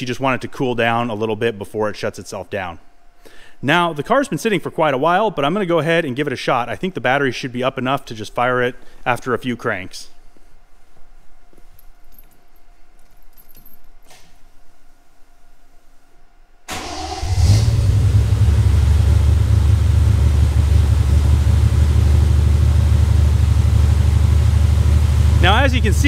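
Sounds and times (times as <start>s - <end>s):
car engine starting and idling: 16.7s - 26.0s.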